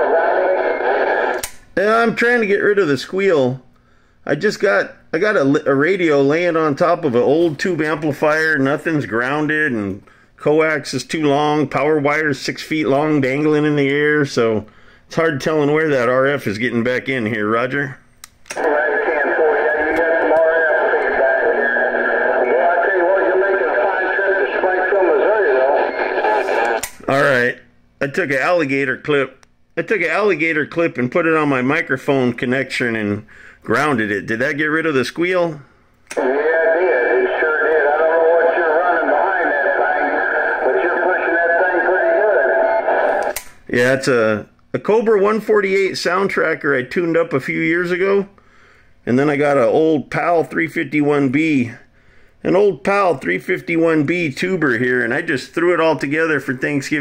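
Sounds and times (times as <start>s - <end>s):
voice over radio speaker: 0.0s - 1.5s, 18.5s - 27.4s, 35.4s - 43.4s
radio click: 0.4s - 1.7s, 18.2s - 22.4s, 25.7s - 27.1s, 36.0s - 36.6s, 41.7s - 43.6s
man speaking close: 18.6s - 25.9s, 36.2s - 42.8s.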